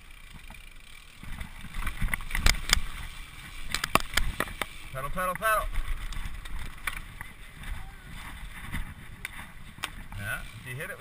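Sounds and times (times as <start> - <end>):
bike rattling and clicking: 0.0 - 11.0.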